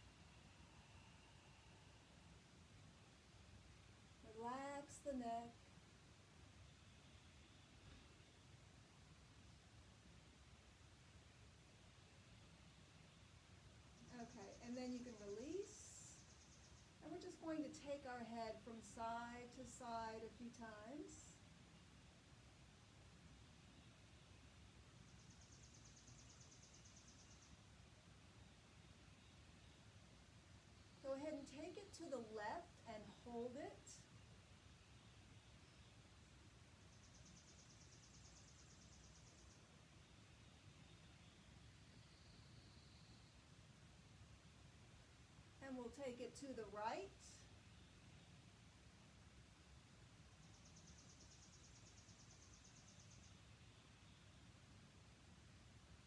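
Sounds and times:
faint high-pitched pulsing trill: 0.0s - 3.0s.

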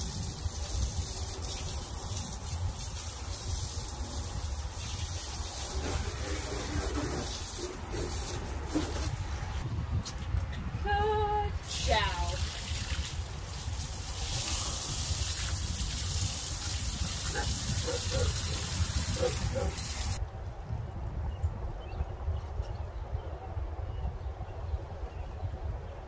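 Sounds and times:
hose water spraying on tire: 0.0s - 9.6s, 11.6s - 20.2s.

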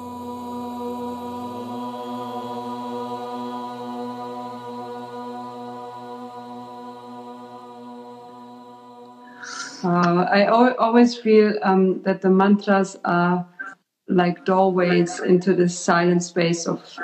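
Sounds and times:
voices chanting one long note: 0.0s - 10.1s.

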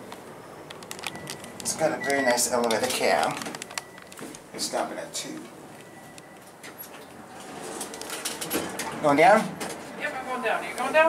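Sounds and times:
elevator doors opening: 0.0s - 9.8s.

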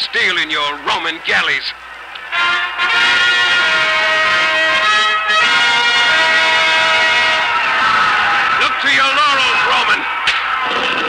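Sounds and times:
orchestral music led by brass: 2.3s - 7.5s.

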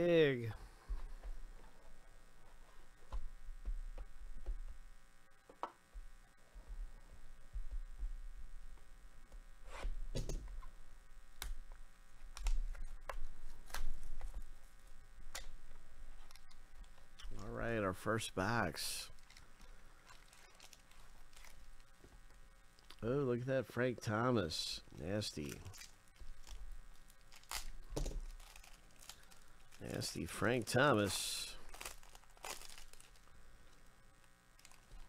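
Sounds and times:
low steady hum: 0.0s - 35.0s
cardboard and plastic crinkling: 19.1s - 23.0s, 25.3s - 33.3s, 34.6s - 35.0s.

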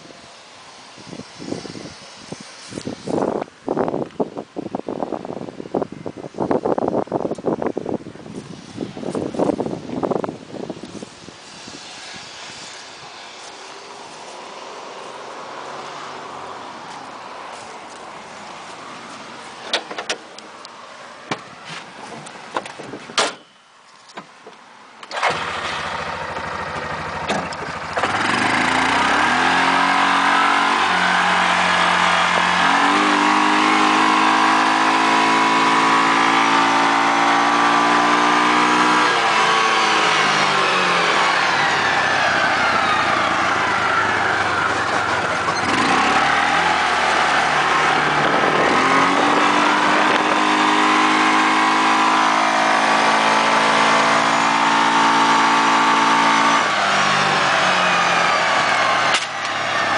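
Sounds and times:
engine revving: 25.1s - 59.9s.

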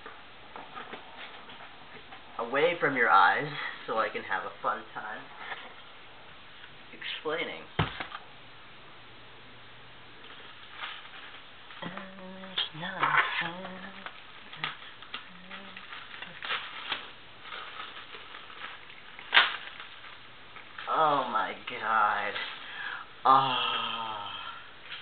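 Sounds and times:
packing material rustling: 10.2s - 22.9s.

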